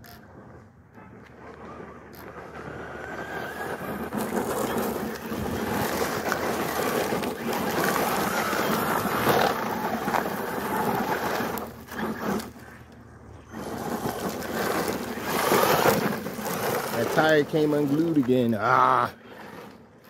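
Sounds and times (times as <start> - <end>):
tires spraying gravel: 0.1 - 20.0
electric motor whining: 1.2 - 20.0.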